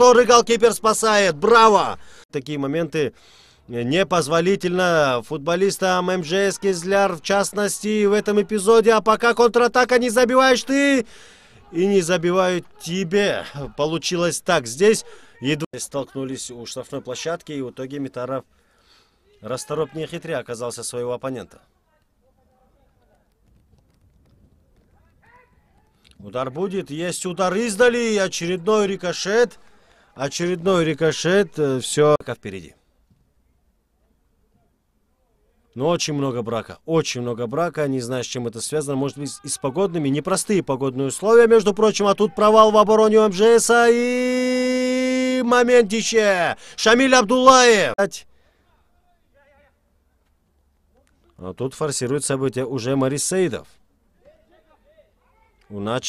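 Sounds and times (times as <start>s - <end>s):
faint distant shouting: 5.9s - 9.2s, 10.4s - 14.0s.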